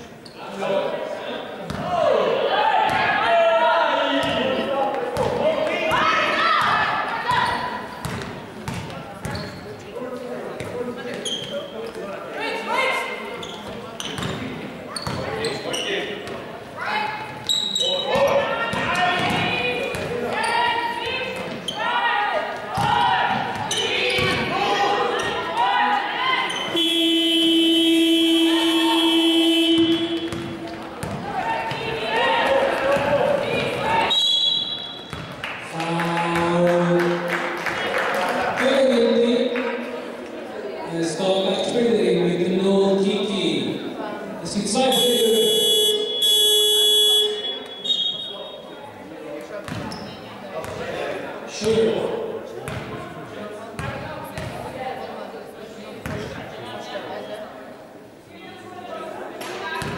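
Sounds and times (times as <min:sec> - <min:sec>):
players shouting: 0:01.8 - 0:08.0, 0:16.8 - 0:34.2
basketball bouncing on floor: 0:08.0 - 0:09.4, 0:29.8 - 0:31.9, 0:53.8 - 0:54.6.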